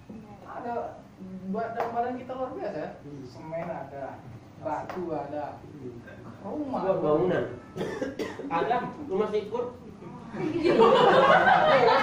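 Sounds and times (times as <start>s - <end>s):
cough: 7.8s - 8.5s.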